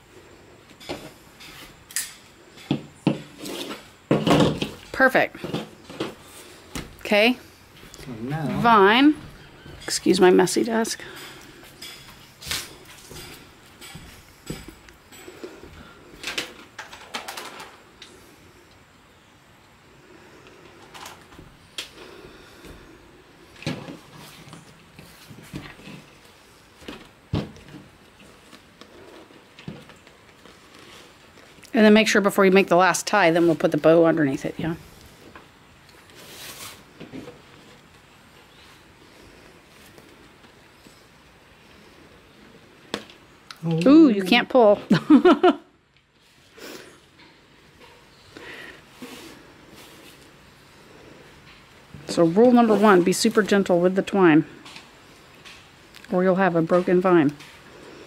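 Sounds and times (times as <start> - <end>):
dry vine rustling and scraping: 3.2 - 6.7, 7.6 - 17.8, 23.5 - 42.6, 46.1 - 54.0.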